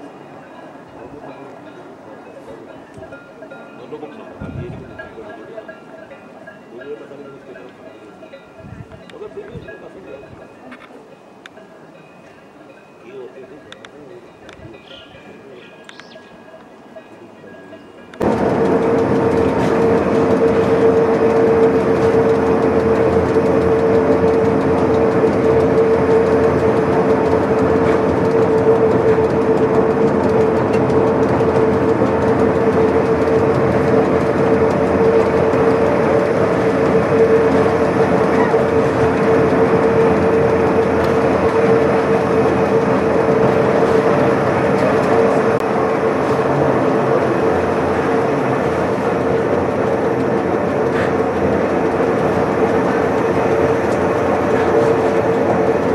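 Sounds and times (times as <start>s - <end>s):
railcar mechanical running noise: 0.0s - 55.9s
drive whine: 18.1s - 55.9s.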